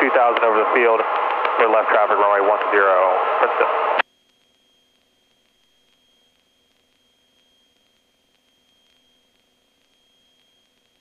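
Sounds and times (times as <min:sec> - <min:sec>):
faint intercom hiss: 0:00.0 - 0:04.0
high-pitched electronic whine: 0:00.0 - 0:11.0
weak low hum: 0:00.0 - 0:11.0.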